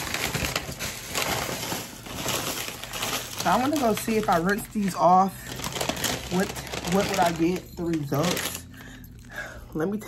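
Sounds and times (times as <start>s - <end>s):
crumpled wrapping rustling: 0.0s - 10.0s.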